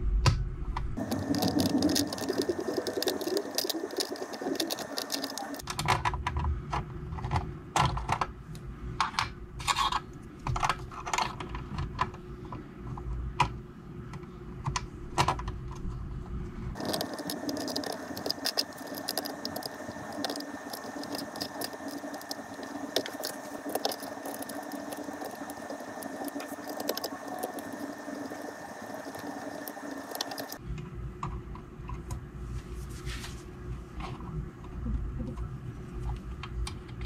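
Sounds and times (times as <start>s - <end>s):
steady hum: 0.0s - 5.6s, 12.0s - 37.0s.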